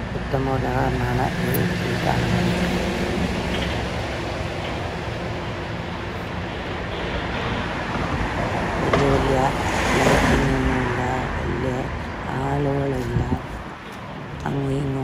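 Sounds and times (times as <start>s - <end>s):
person talking: 0.0s - 2.7s, 8.9s - 13.6s, 14.4s - 15.0s
road traffic rushing: 0.0s - 15.0s.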